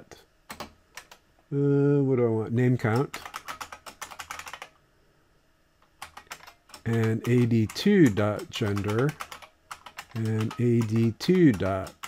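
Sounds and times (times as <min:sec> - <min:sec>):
typing on computer keyboard: 0:00.5 - 0:01.2, 0:02.8 - 0:04.7, 0:05.9 - 0:12.0.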